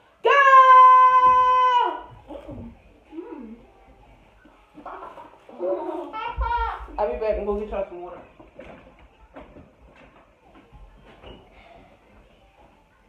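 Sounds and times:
faint scattered sounds: 1.1 - 13.0.

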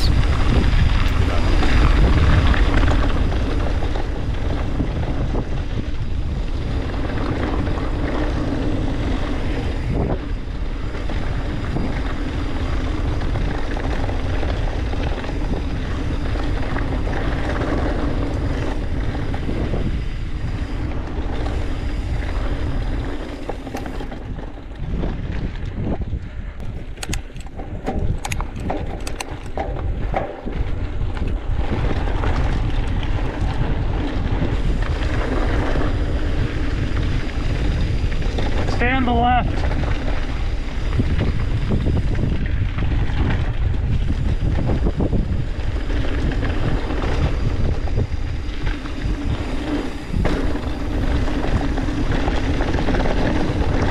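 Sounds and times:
bike riding noise: 0.0 - 53.9
wind buffeting microphone: 0.0 - 53.9
sharp clicks: 26.9 - 29.7.

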